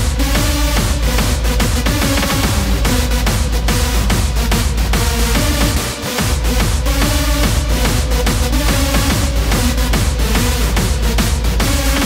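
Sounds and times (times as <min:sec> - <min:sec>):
distorted kick drum: 0:00.0 - 0:12.0.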